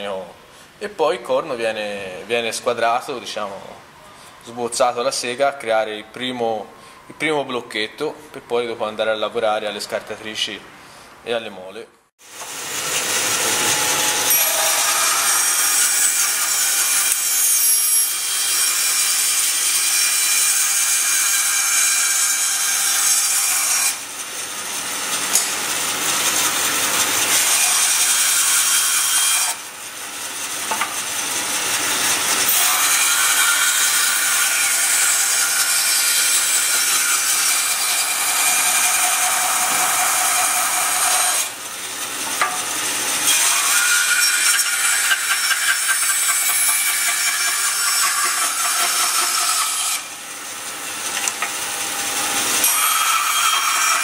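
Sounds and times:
bandsaw cutting horn: 12.4s - 24.1s, 30.4s - 50.2s.

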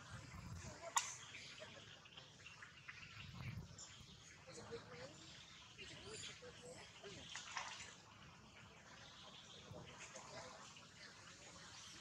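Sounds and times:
water splashing and sloshing: 0.0s - 12.0s.

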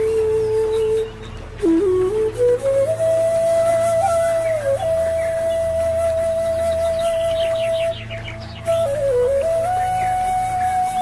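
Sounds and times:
flute long note: 0.0s - 11.0s.

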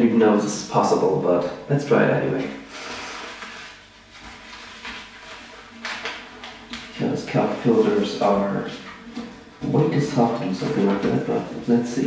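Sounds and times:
paper rustling and crinkling: 3.1s - 9.3s.

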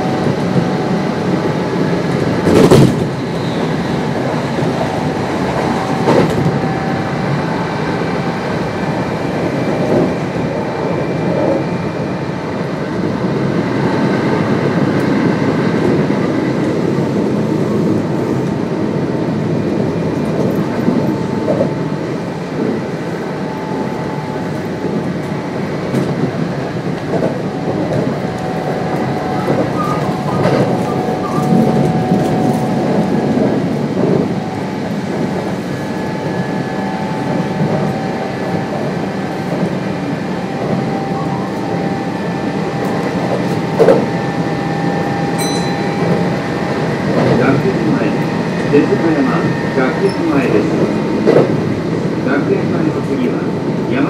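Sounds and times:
train wheels rumbling on rails: 0.0s - 54.0s
traction motor whine: 26.9s - 47.2s.

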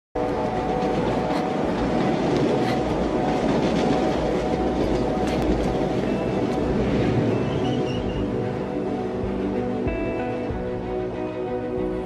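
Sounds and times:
train rumbling on rails: 0.2s - 12.0s.

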